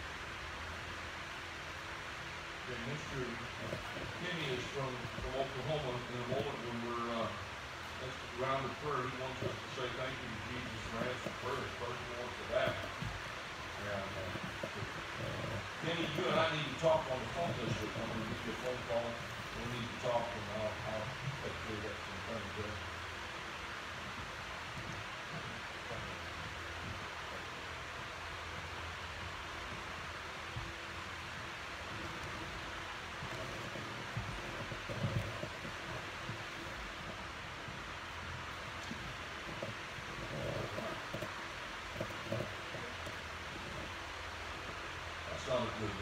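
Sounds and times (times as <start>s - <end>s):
electric fan hiss: 0.0s - 46.0s
faint low bumps: 0.0s - 46.0s.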